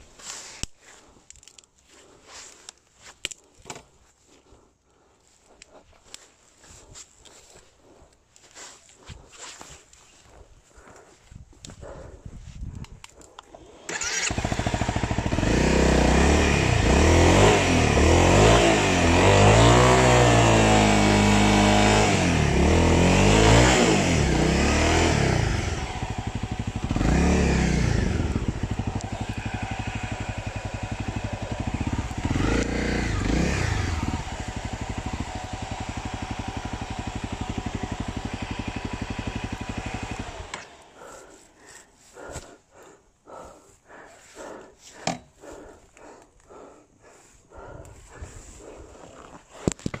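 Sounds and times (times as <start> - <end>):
dirt bike engine revving: 13.9 - 41.3.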